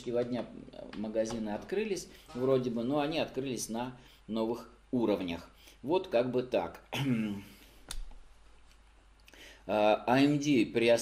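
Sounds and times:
man speaking: 0.0s - 7.6s, 9.7s - 11.0s.

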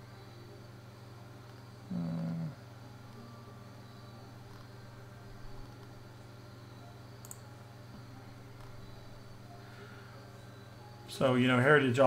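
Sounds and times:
low background hum: 0.0s - 12.0s
person humming: 1.8s - 2.7s
faint clicks: 7.2s - 7.4s.

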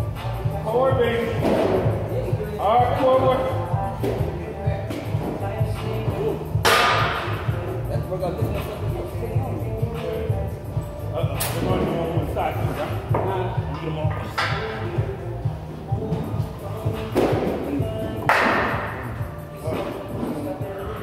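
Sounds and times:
background music with beat: 0.0s - 21.0s.

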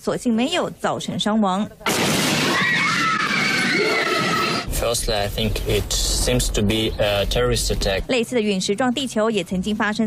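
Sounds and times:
high shout-like voices: 2.6s - 4.7s.

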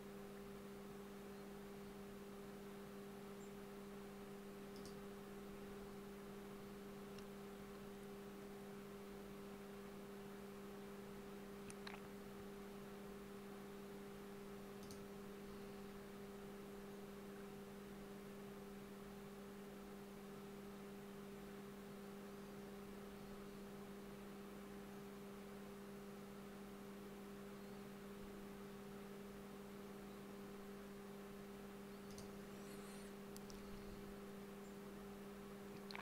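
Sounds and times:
faint electrical hum: 0.0s - 36.0s
faint click: 4.7s - 5.0s, 14.8s - 15.0s, 32.0s - 32.4s, 33.3s - 33.6s.

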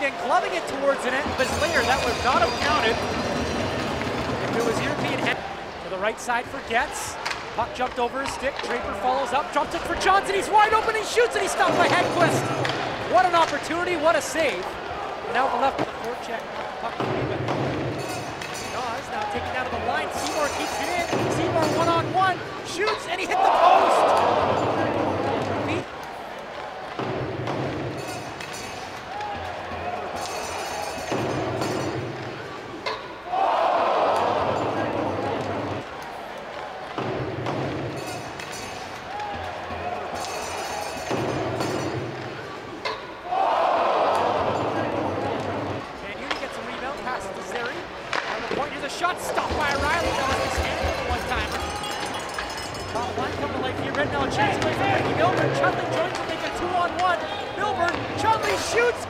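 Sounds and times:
crowd noise: 0.0s - 59.0s
puck and sticks knocking on boards: 7.2s - 10.1s, 11.6s - 14.0s, 26.9s - 30.4s, 36.9s - 38.6s, 45.4s - 59.0s.

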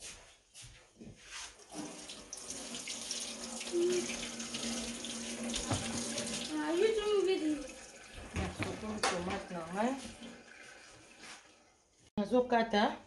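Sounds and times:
water running into metal sink: 1.6s - 11.6s
tap turned on: 5.5s - 6.1s.

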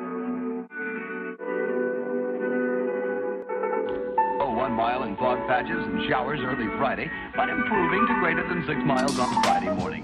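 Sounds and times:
background music sustained chords: 0.0s - 10.0s.

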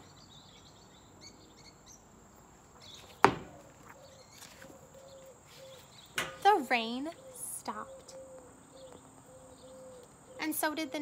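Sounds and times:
faint bird chirps: 2.8s - 11.0s
sharp knock: 3.2s - 3.6s.

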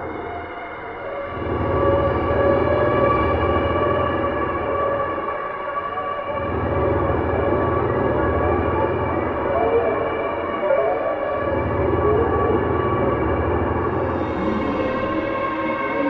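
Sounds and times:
synthesizer drone: 10.8s - 16.0s
low rumbling bass: 13.4s - 16.0s.

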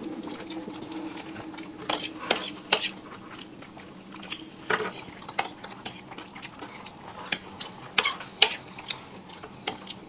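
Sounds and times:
low steady hum: 0.0s - 10.0s
forks scraping and clinking plates: 0.3s - 3.5s, 4.1s - 10.0s.

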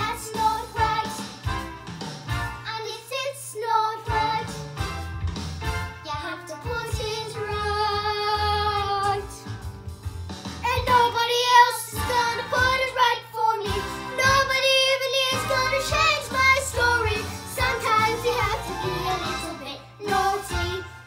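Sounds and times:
girl singing: 0.0s - 1.2s, 2.7s - 4.6s, 6.0s - 9.4s, 10.6s - 21.0s
recorded musical backing track: 0.0s - 21.0s.

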